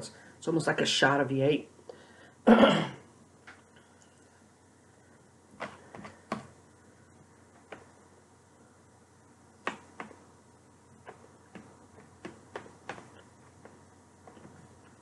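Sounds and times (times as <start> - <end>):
person clearing throat: 2.5 - 3.1.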